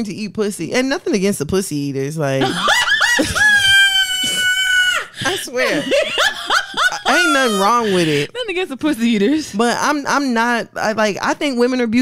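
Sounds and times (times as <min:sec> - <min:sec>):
woman squealing: 0:02.4 - 0:08.4.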